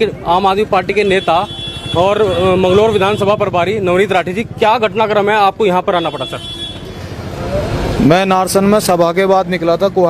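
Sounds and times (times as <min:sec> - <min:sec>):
vehicle engine rumbling: 0:00.0 - 0:06.2
outdoor street noise: 0:00.0 - 0:10.0.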